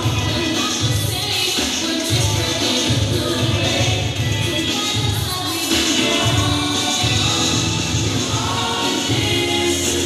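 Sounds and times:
group singing over a beat: 0:00.0 - 0:10.0.

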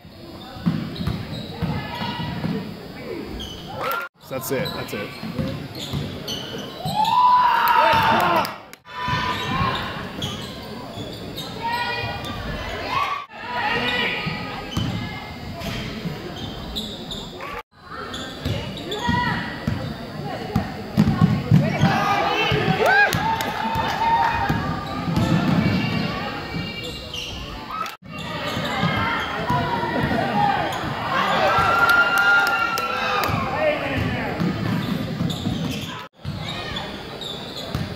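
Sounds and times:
voices of players and crowd: 0:00.0 - 0:37.9.

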